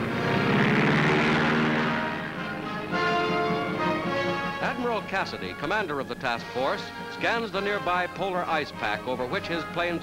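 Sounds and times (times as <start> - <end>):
propeller aircraft engine: 0.0 - 4.7
orchestral music: 0.0 - 10.0.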